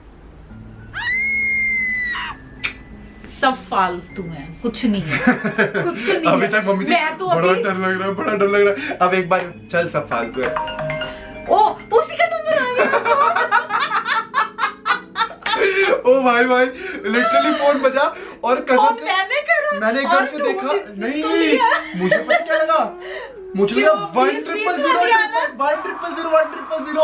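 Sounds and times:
high-pitched scream: 0:00.9 - 0:02.8, 0:25.6 - 0:27.0
man and woman laughing: 0:05.1 - 0:06.6, 0:12.8 - 0:16.1, 0:17.0 - 0:18.0, 0:20.3 - 0:23.9, 0:24.8 - 0:27.0.

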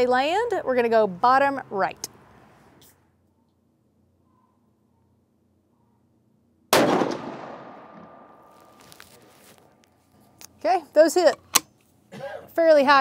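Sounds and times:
gunshot echo: 0:06.7 - 0:08.7
rifle shot: 0:06.7 - 0:08.7.

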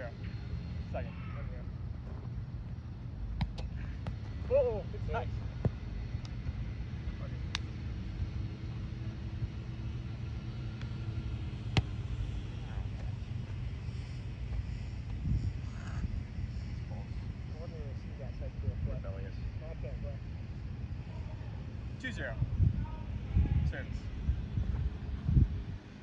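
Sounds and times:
low outdoor rumble: 0:00.0 - 0:26.0.

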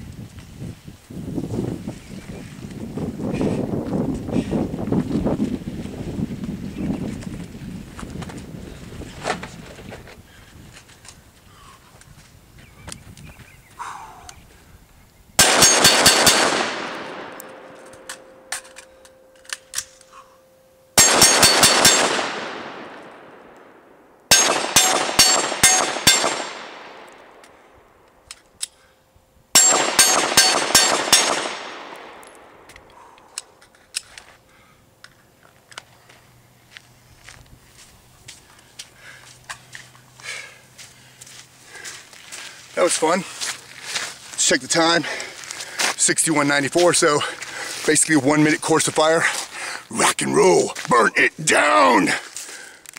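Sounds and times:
rapid rifle fire: 0:15.4 - 0:17.7, 0:21.0 - 0:23.4, 0:24.3 - 0:27.1, 0:29.6 - 0:32.2
pistol gunshots: 0:15.4 - 0:18.5, 0:21.0 - 0:27.4, 0:29.6 - 0:32.7.

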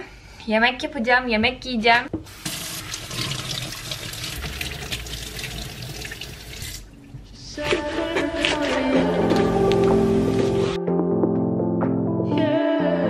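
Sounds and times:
tap water splashing into sink: 0:02.1 - 0:06.8
background music: 0:06.0 - 0:13.0.

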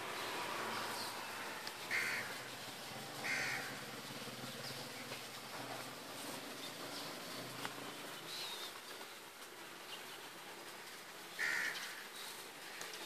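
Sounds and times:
bird calling: 0:00.0 - 0:02.6, 0:03.2 - 0:05.9, 0:06.5 - 0:09.2, 0:11.3 - 0:13.0
faint outdoor background: 0:00.0 - 0:13.0.

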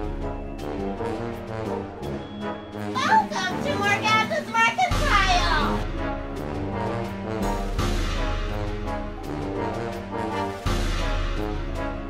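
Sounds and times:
background music: 0:00.0 - 0:12.0
young girls calling excitedly: 0:03.0 - 0:05.8.

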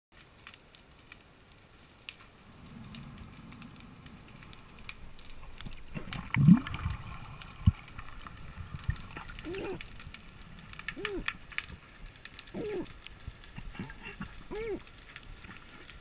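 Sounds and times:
underwater clicks and crackles: 0:00.2 - 0:16.0
low underwater rumble: 0:02.4 - 0:11.9.

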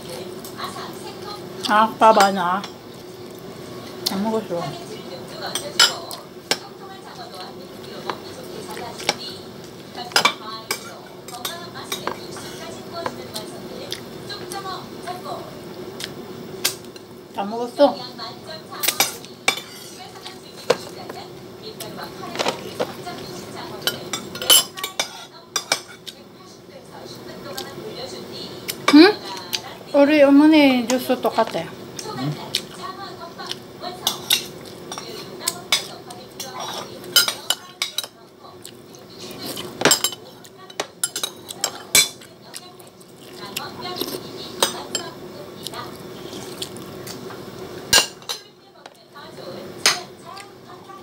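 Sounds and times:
tableware clinking: 0:23.8 - 0:26.0, 0:39.8 - 0:42.2, 0:47.9 - 0:48.5.

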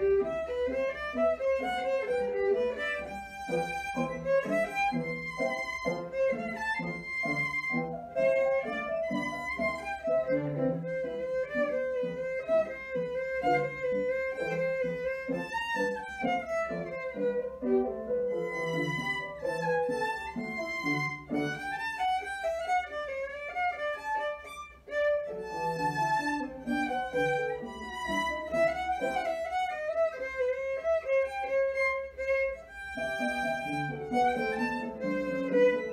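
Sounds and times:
bowed violin melody: 0:00.0 - 0:35.9
low accompanying notes: 0:00.0 - 0:35.9.

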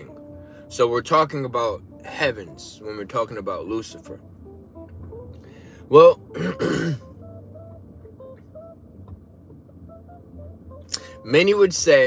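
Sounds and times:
man clearing throat: 0:06.3 - 0:07.1.

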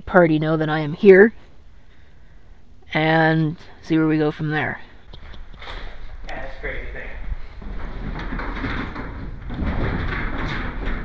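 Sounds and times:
steady low hum: 0:00.0 - 0:11.0
freight elevator rumbling and rattling: 0:04.8 - 0:11.0.

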